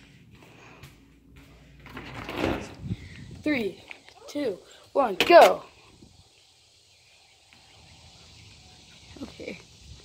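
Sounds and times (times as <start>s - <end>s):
soft footsteps on indoor floor: 0.0s - 2.0s.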